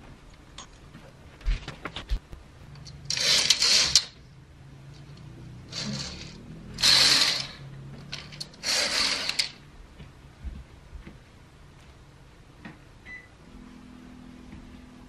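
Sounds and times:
hangers clicking: 2.8s - 4.2s, 5.7s - 9.6s
hangers scraping along metal rails: 2.8s - 4.2s, 5.0s - 9.6s.

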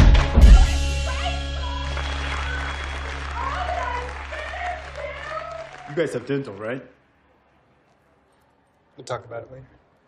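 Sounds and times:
voices cheering: 0.5s - 6.9s
applause: 1.1s - 6.9s.

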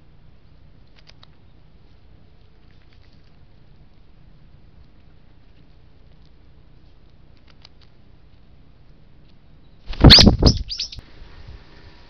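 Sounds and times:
bird calling harsh falling notes: 9.9s - 11.0s.

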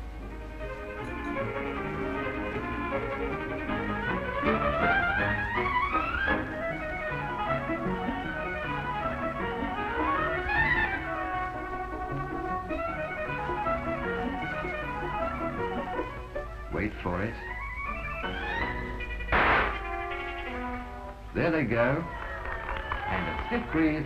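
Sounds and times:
orchestral music with strings: 0.0s - 24.0s.

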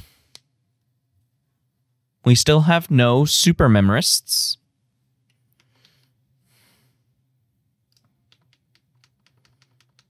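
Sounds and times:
faint computer clicking: 7.9s - 10.0s.

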